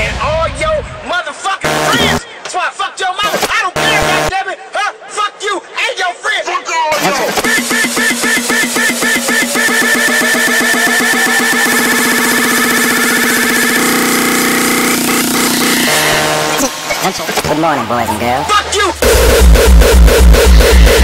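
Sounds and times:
hardcore electronic music: 1.6 - 2.2, 3.2 - 4.3, 6.9 - 21.0
rising pitch sound: 7.4 - 17.1, 19.0 - 21.0.

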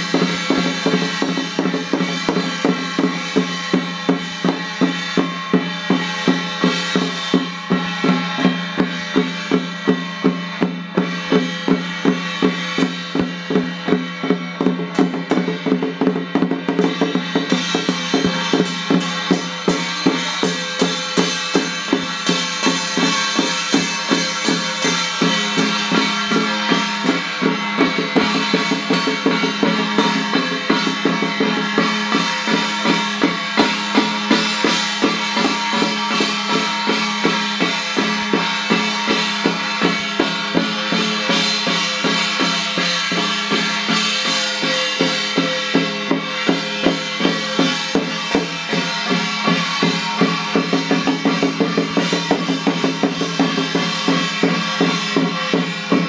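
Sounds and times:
drum beating steadily: 0.0 - 56.0.

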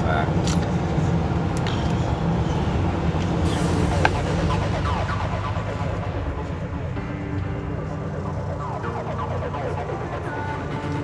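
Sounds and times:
bus engine and road rumble: 0.0 - 11.0.

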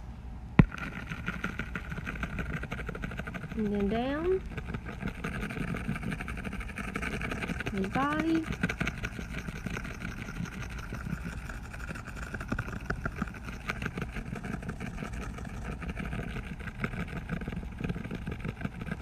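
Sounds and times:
mechanical engine-like hum: 0.0 - 19.0.

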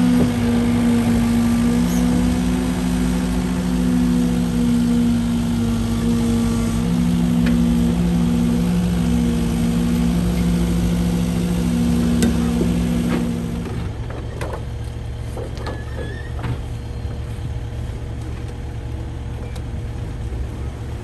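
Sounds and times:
excavator diesel engine running: 0.0 - 21.0.

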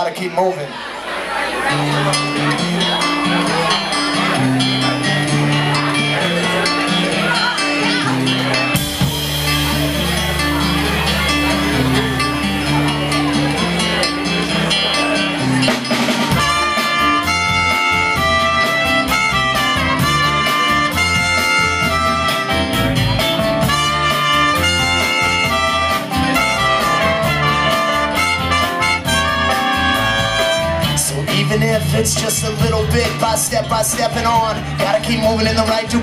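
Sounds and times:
guitars and bass: 1.2 - 36.0
drum kit: 2.0 - 36.0
trumpet melody: 16.2 - 31.1.

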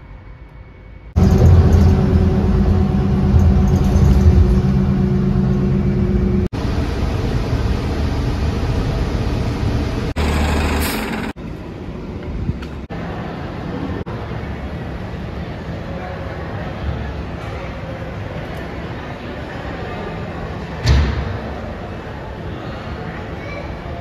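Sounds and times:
bus engine drone: 0.0 - 19.9
traffic and road noise: 1.2 - 24.0.

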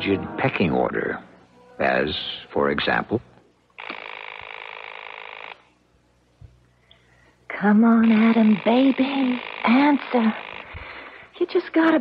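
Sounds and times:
telephone bell ringing: 3.9 - 5.6.

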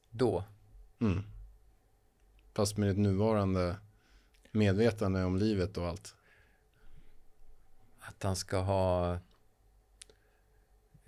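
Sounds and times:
faint click: 9.3 - 10.4.

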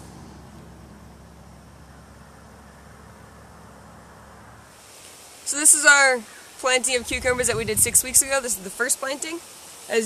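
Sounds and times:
faint hiss: 4.6 - 10.0.

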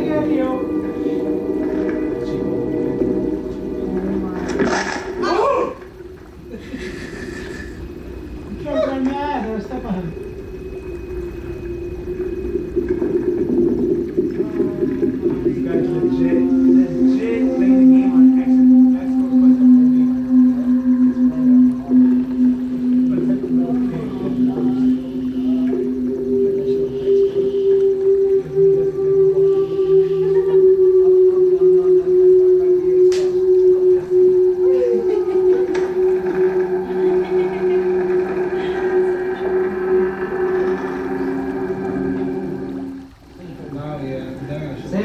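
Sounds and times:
film score held low notes: 0.0 - 45.0.

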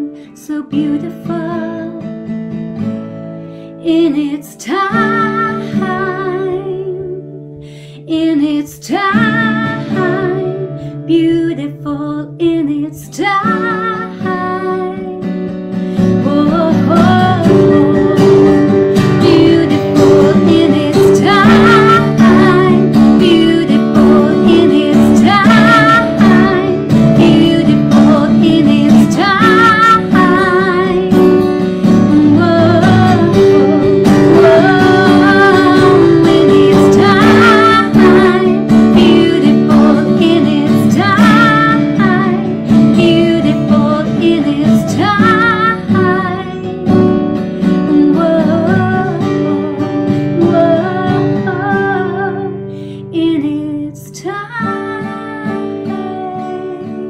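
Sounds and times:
woman singing with vibrato: 0.0 - 2.1, 3.8 - 7.3, 8.1 - 15.3, 16.0 - 57.0
strummed acoustic guitar: 0.0 - 57.0.

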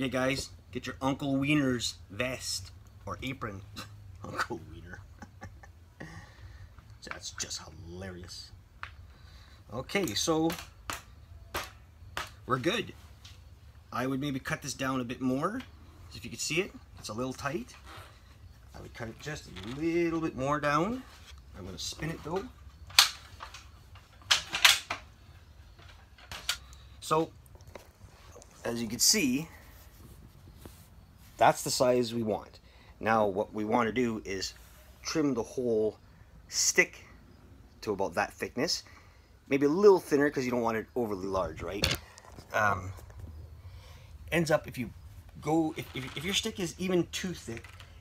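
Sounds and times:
walking stick clicks and knocks: 45.6 - 48.0.

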